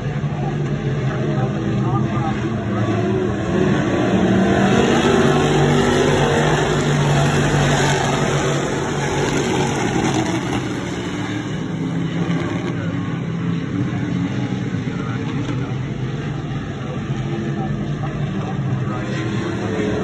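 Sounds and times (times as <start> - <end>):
race car engines roaring: 0.0 - 20.0.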